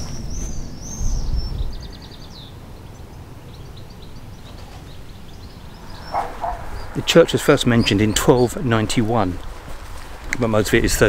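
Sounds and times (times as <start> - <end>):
songbird singing: 0.0 - 11.0
low rumble: 5.0 - 9.8.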